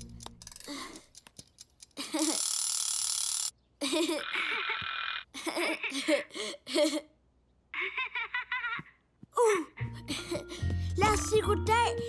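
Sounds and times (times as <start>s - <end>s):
egg timer ticking: 0.0s - 3.5s.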